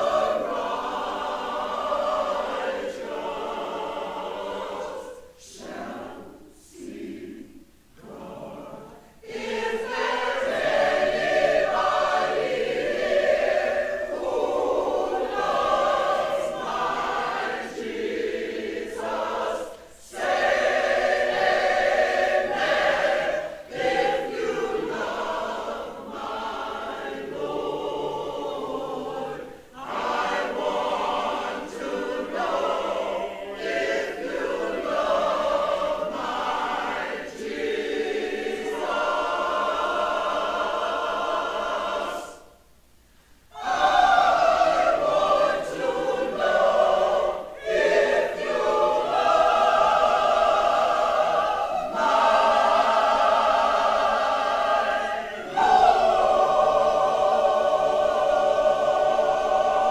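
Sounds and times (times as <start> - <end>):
mixed choir singing a spiritual: 0.0 - 59.9.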